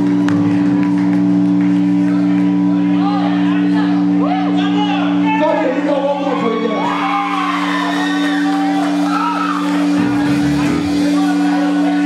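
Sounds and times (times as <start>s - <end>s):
amplified band low drone: 0.0s - 5.8s, 8.4s - 12.0s
crowd noise: 0.0s - 12.0s.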